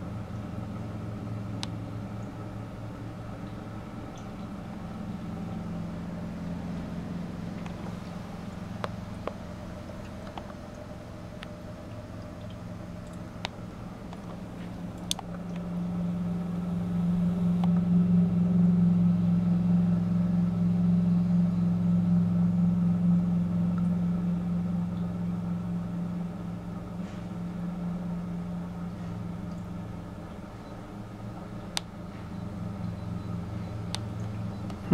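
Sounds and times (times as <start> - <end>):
low mechanical hum: 0.0 - 34.9.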